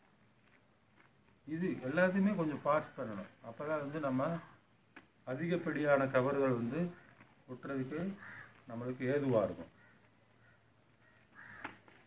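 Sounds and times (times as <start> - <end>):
newspaper rustling and crackling: 0.0 - 4.0, 6.0 - 10.2.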